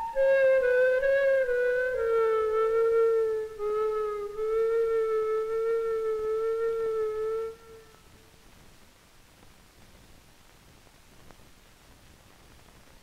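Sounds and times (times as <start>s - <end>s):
solo flute playing long notes: 0.0s - 8.2s.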